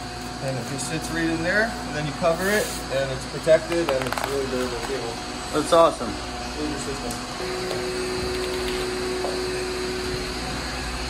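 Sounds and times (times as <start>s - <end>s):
machine whirring: 0.0s - 11.0s
steady hum: 0.0s - 11.0s.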